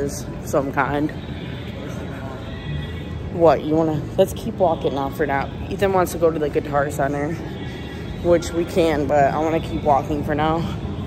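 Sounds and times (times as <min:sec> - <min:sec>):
faint background music: 0:00.0 - 0:11.0
murmur of distant voices: 0:00.0 - 0:11.0.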